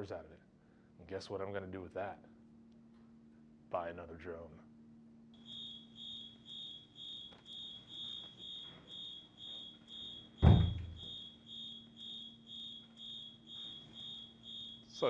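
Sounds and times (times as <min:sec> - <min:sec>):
electronic alarm beeping: 0:05.4 - 0:15.0
loud thump: 0:10.4 - 0:11.1.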